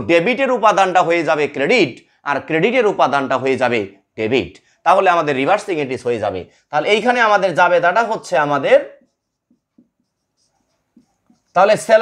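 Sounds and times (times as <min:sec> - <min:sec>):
marker scratching on whiteboard: 0:07.0 - 0:12.0.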